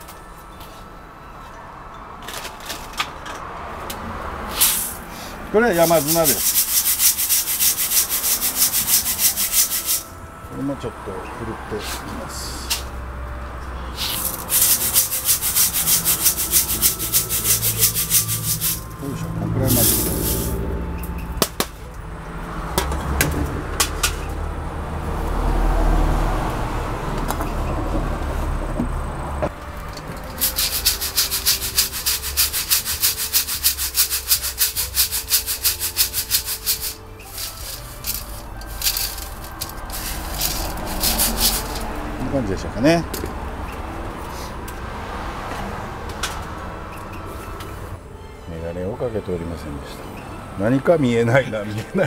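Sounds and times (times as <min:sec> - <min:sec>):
sand rattling in metal sieve: 0:04.5 - 0:10.1, 0:14.0 - 0:19.0, 0:19.6 - 0:20.6, 0:30.3 - 0:42.0.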